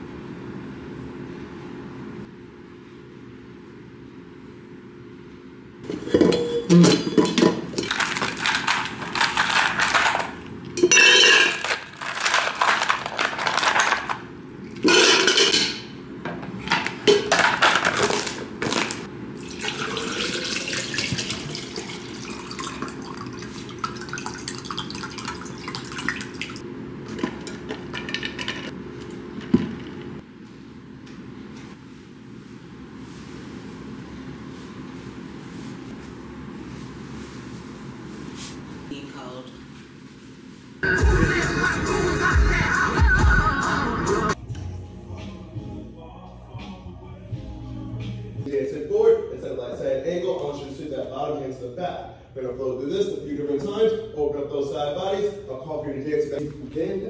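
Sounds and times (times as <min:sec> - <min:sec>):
ice cubes clattering into tumbler: 0:07.6 - 0:10.4, 0:11.0 - 0:14.2
liquid pouring into tumbler: 0:19.4 - 0:26.6.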